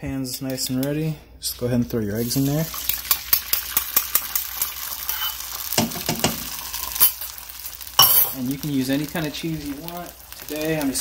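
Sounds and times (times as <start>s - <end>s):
eggs sizzling in a frying pan: 1.8s - 11.0s
fork scraping metal bowl: 5.1s - 5.4s.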